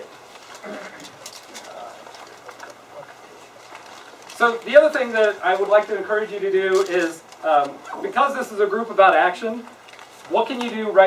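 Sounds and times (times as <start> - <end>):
small clicks and rustles: 0.1 - 6.0, 9.7 - 10.9
faint voice murmur: 0.6 - 3.7.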